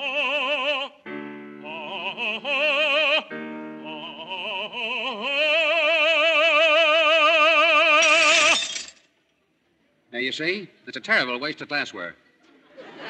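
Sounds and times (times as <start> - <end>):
glass shattering: 8.0 - 9.1.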